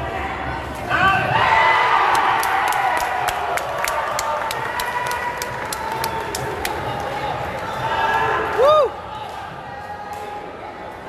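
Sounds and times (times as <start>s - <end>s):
crowd cheering: 1.0s - 10.6s
rhythmic clapping: 2.1s - 9.5s.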